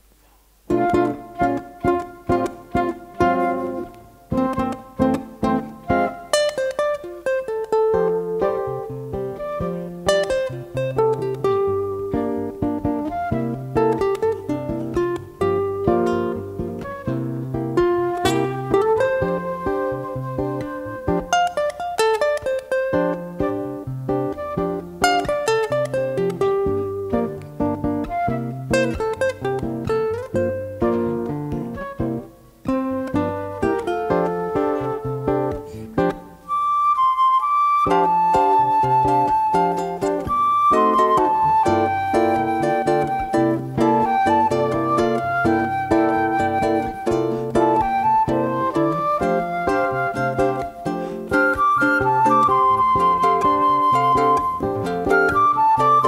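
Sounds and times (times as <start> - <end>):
classical guitar: 0.0 - 56.0
ukulele: 0.0 - 56.0
flute melody: 0.7 - 56.0.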